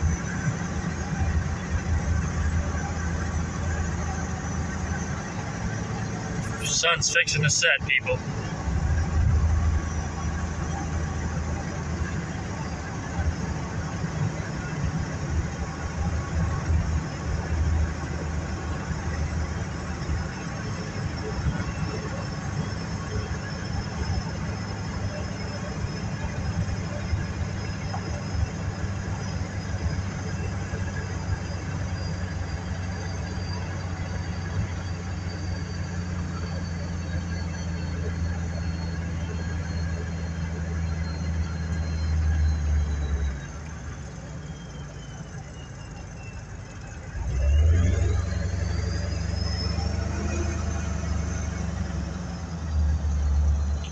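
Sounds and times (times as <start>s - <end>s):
car engine and road drone: 0.0s - 53.9s
high engine whine: 0.0s - 53.9s.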